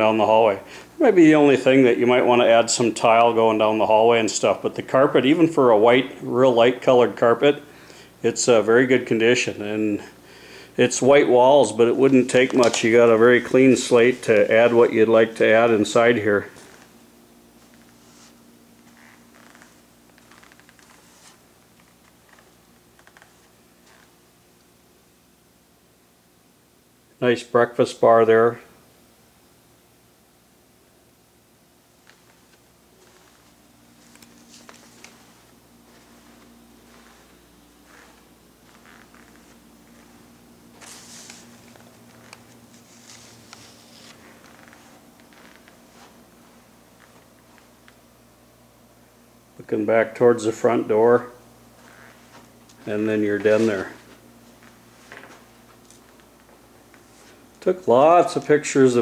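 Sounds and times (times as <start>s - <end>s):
faint steady hum: 0.0s - 59.0s
soft rustles: 11.8s - 24.2s, 32.0s - 48.0s, 51.7s - 58.6s.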